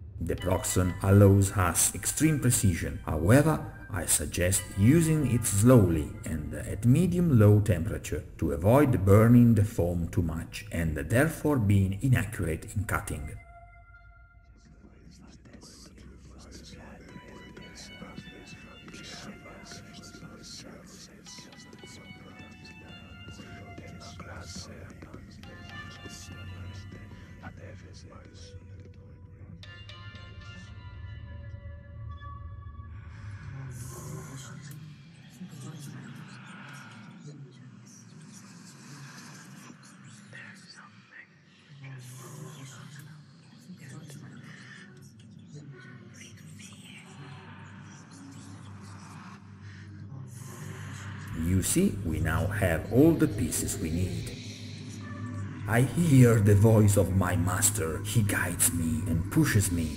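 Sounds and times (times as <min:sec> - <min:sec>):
breathy whispering: 0:00.0 - 0:13.4, 0:14.5 - 0:28.7, 0:33.1 - 0:59.9
steady low hum: 0:49.3 - 0:59.9.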